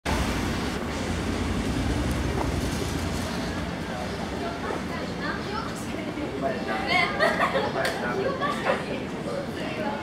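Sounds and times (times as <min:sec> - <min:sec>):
busy street noise: 0:00.0 - 0:10.0.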